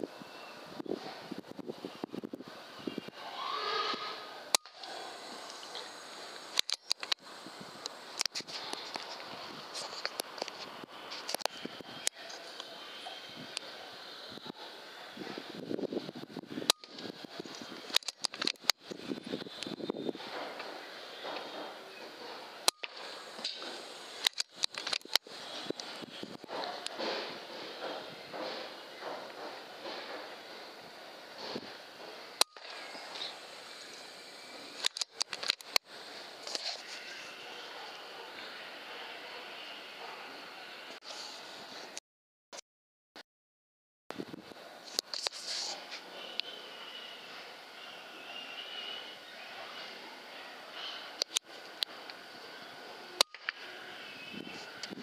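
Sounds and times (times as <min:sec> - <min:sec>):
faint steady hiss: 0:00.0 - 0:41.9.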